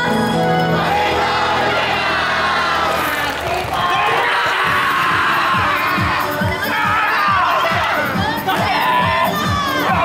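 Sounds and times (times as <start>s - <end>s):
loud dance music: 0.8s - 10.0s
many voices shouting together: 0.8s - 10.0s.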